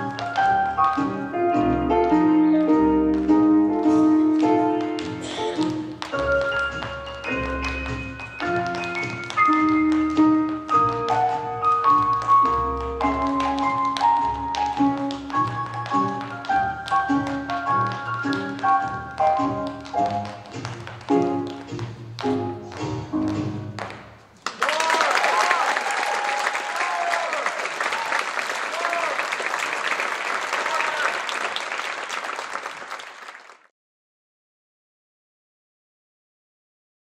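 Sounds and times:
tap shoes clicking on stage: 0.0 - 1.3, 1.9 - 25.4
recorded music with bright notes: 0.0 - 23.8
audience applause and cheering: 24.4 - 33.7.

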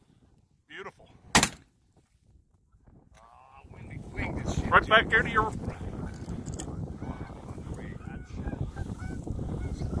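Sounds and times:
goose honking and clucking: 6.9 - 10.0.

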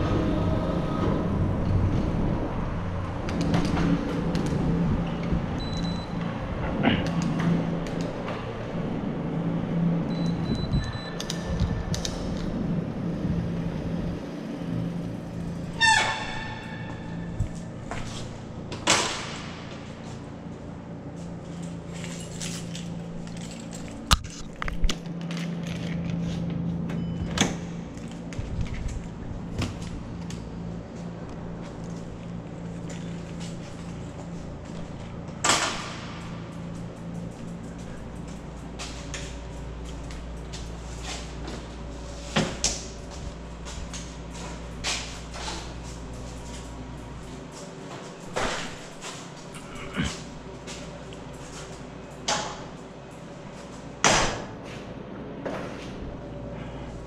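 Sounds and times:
bicycle riding on concrete: 0.0 - 26.9, 27.8 - 54.0
low hum: 0.0 - 57.0
bicycle brake squeal: 15.6 - 17.4.

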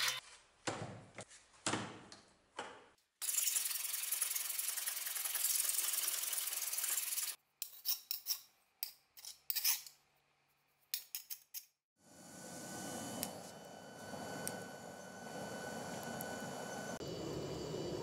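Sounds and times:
file scraping steel blade: 0.0 - 0.2, 5.0 - 8.5, 9.2 - 10.0.

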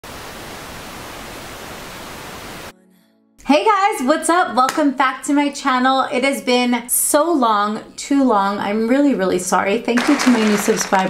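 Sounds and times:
tv static hiss: 0.0 - 2.7.

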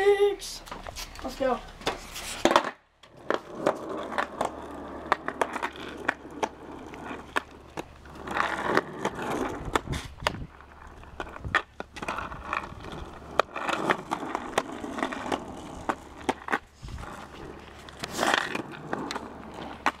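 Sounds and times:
skateboard set down on concrete: 0.6 - 10.6
skateboard clicks and knocks: 0.6 - 20.0.

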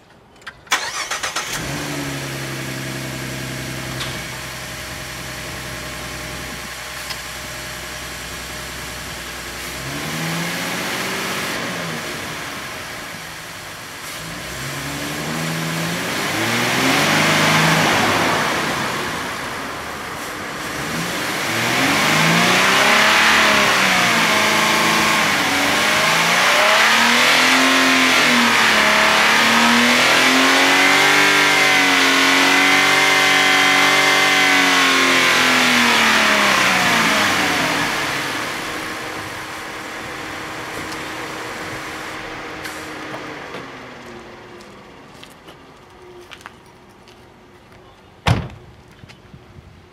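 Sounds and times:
car engine revving: 0.7 - 45.1.

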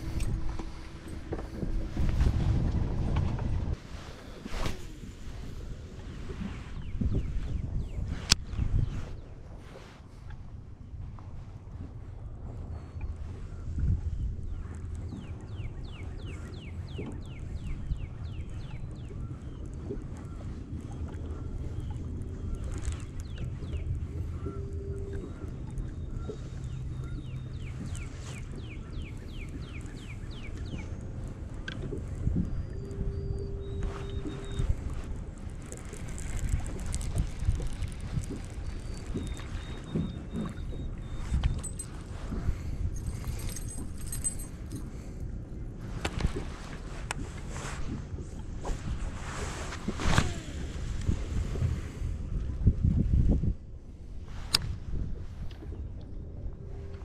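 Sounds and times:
boat motor humming: 0.0 - 6.2, 10.8 - 52.4, 55.0 - 57.0
water and wind noise: 0.0 - 57.0
brief beeps: 24.2 - 28.4, 32.6 - 34.8, 38.7 - 42.5
sharp clicks and rustles: 35.0 - 40.5.

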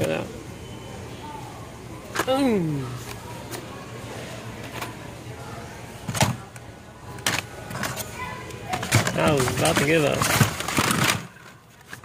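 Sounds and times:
plastic packages clacking: 8.7 - 12.0.

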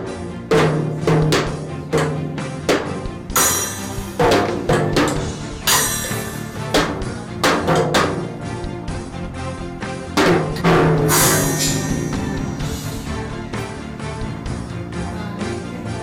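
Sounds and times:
background music: 0.0 - 16.0
tom and bass drum hits: 0.6 - 8.4, 10.2 - 13.8
cymbal crashes: 3.3 - 7.2, 10.2 - 14.2.

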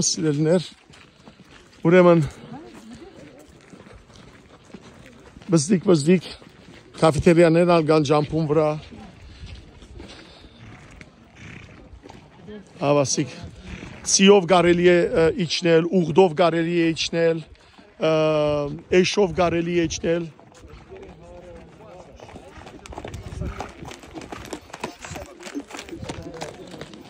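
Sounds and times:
horse hoofbeats on dirt and stone: 0.0 - 15.0, 17.9 - 27.0.

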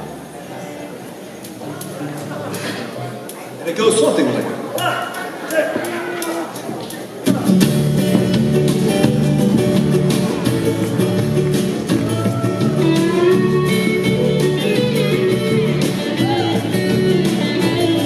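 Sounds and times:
live band playing: 4.6 - 18.0
banjo ukulele: 5.4 - 18.0.

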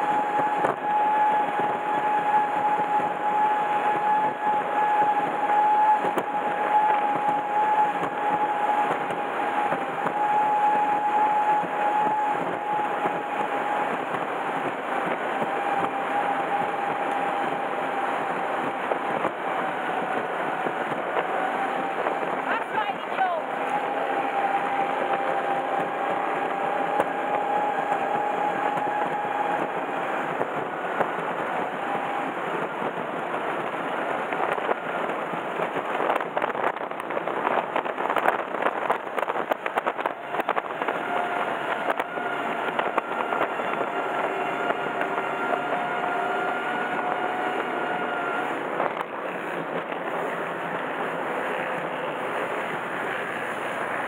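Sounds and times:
hull thumping on waves: 0.0 - 54.0
powerboat engine whining: 0.0 - 54.0
wind and water rush: 0.0 - 54.0.

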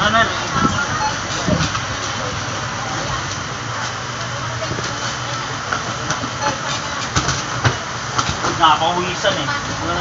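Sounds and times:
busy shop hum and clatter: 0.0 - 10.0.

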